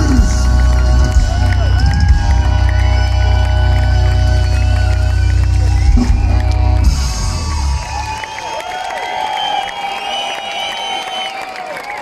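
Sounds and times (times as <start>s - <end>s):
live band music: 0.0s - 8.4s
crowd cheering and whooping: 0.0s - 12.0s.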